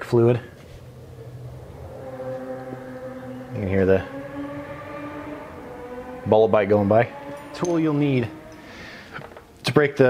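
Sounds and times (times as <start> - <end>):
motorcycle passing by: 0.0 - 9.6.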